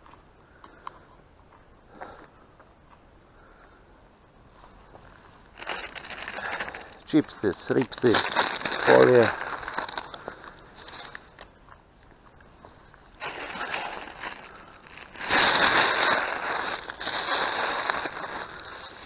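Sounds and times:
plastic bag rustling and crinkling: 0:04.6 - 0:11.5, 0:12.5 - 0:19.0.

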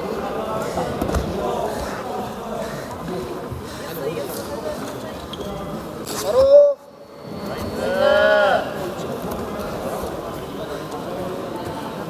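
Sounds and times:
echoing indistinct voices: 0:00.0 - 0:12.0.

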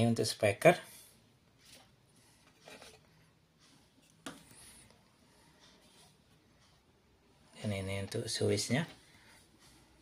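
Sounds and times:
faint cable handling sounds: 0:01.5 - 0:07.0.

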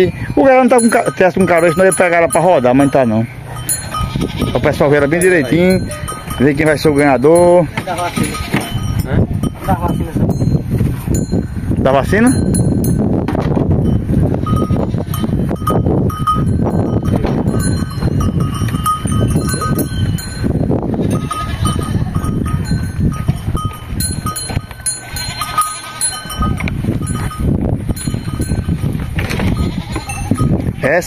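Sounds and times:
metallic bell clinking: 0:00.0 - 0:13.0, 0:13.8 - 0:30.6
cattle moving about: 0:00.0 - 0:31.0.

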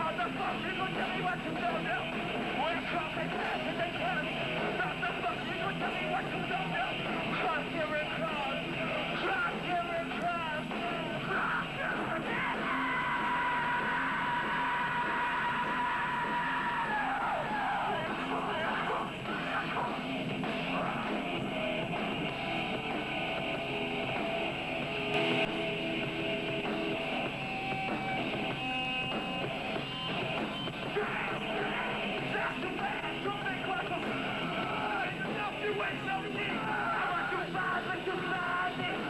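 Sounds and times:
electric guitars: 0:00.0 - 0:39.0
live metal band playing: 0:00.0 - 0:39.0
rock drums: 0:00.0 - 0:39.0
yelled vocals: 0:00.0 - 0:39.0.

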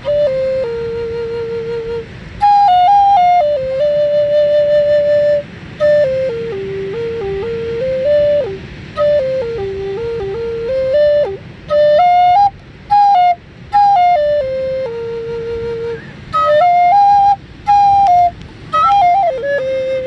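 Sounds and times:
wooden flute melody: 0:00.0 - 0:20.0.

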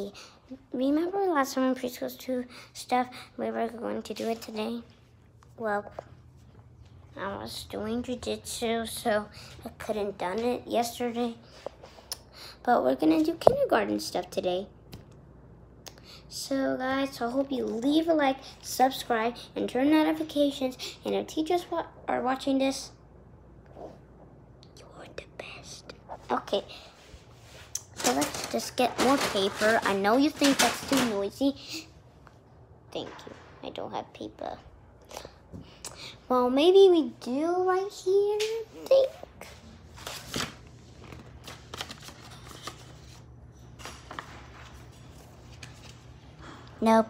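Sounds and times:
soft whispering: 0:24.6 - 0:26.9.

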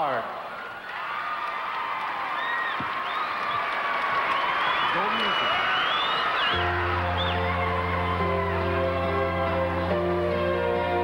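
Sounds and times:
crowd cheering: 0:00.0 - 0:11.0
whistles: 0:02.4 - 0:03.6, 0:04.3 - 0:07.5.

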